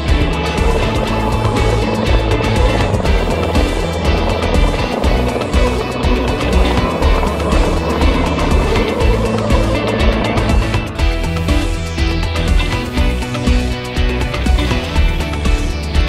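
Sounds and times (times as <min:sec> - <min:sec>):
toy truck electric motor: 0:00.0 - 0:13.6
background music: 0:00.0 - 0:16.0.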